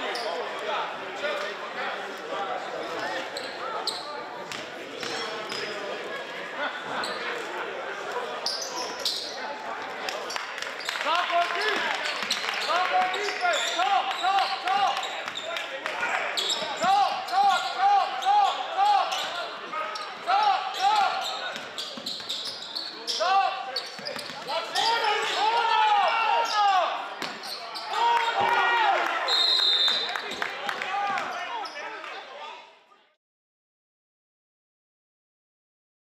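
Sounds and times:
voices echoing: 0.0s - 32.8s
sneaker squeaks on court: 3.3s - 5.8s, 8.4s - 9.4s, 17.6s - 25.4s, 27.2s - 27.9s.

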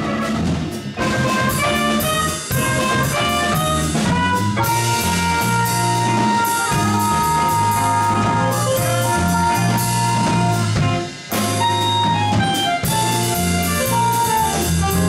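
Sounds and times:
bass line: 0.0s - 15.0s
drum kit with cymbals: 0.0s - 15.0s
horn melody: 0.0s - 15.0s.

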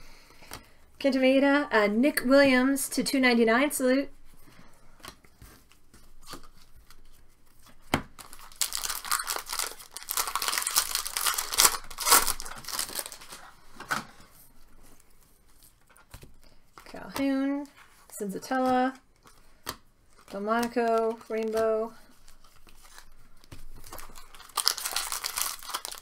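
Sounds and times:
foil wrapper tearing and crinkling: 8.2s - 13.5s, 22.2s - 26.0s.

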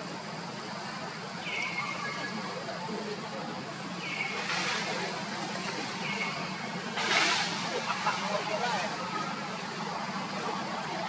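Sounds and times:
outdoor background noise: 0.0s - 11.0s
brief rush of noise: 6.9s - 8.0s.

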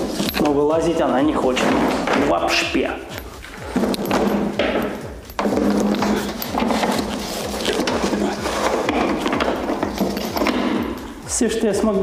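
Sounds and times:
cardboard packaging rustling: 5.4s - 10.6s.

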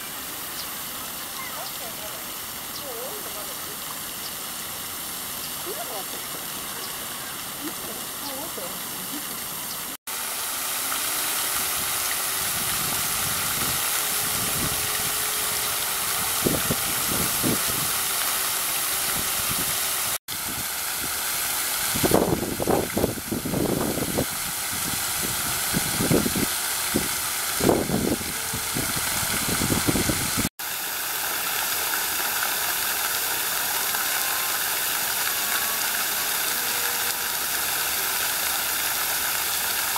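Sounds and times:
fountain water spraying: 0.0s - 39.9s
low water bursts: 0.0s - 39.9s.

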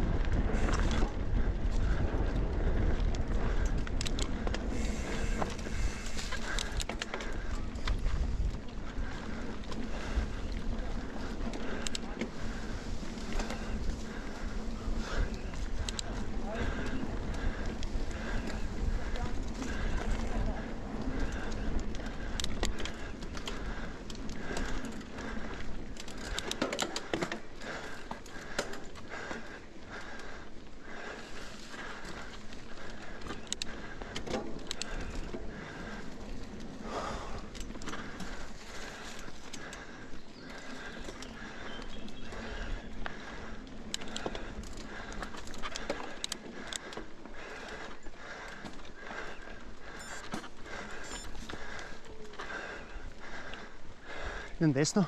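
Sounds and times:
bike chain and frame rattling: 0.0s - 55.0s
bike tyres rolling on dirt: 0.0s - 55.0s.

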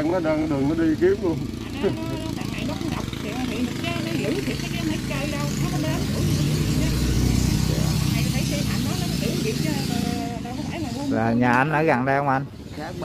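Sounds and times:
vehicle engine running: 0.0s - 11.2s
people talking: 0.0s - 13.0s.

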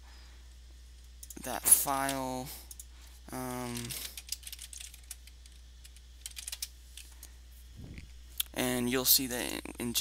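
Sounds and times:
low steady hum: 0.0s - 10.0s
typing on computer keyboard: 3.8s - 6.7s.

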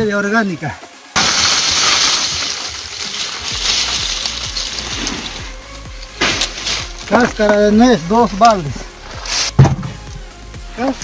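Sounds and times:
walnut shells clattering: 1.2s - 7.6s.

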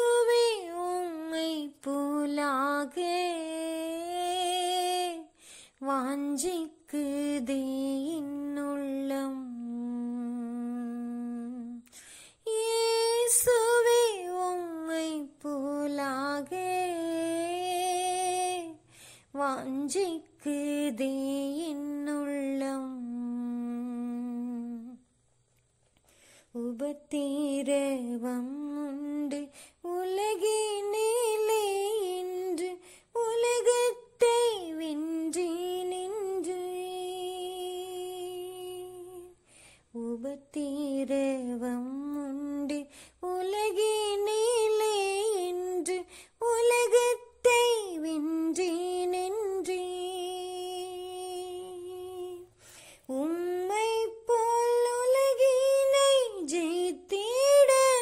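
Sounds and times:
woman singing unaccompanied: 0.0s - 25.1s, 26.5s - 58.0s
singer taking a breath: 5.4s - 5.8s, 11.9s - 12.4s, 18.8s - 19.4s, 26.0s - 26.6s, 29.5s - 29.8s, 39.4s - 39.9s, 42.9s - 43.2s, 46.1s - 46.4s, 52.5s - 53.1s.

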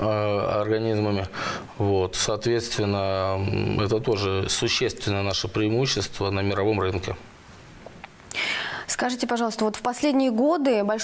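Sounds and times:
woman inhaling: 8.3s - 8.9s.

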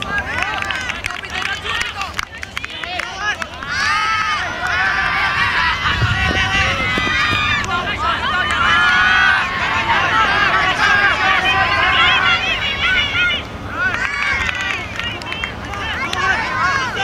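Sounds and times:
players shouting: 0.0s - 17.0s.

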